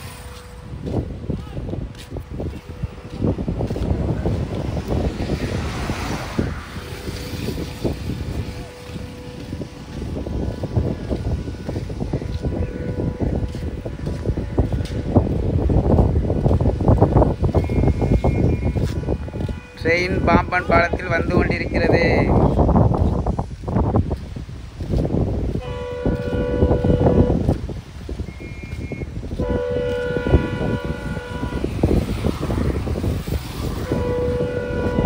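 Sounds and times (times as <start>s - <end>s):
wind buffeting microphone: 0.0s - 35.0s.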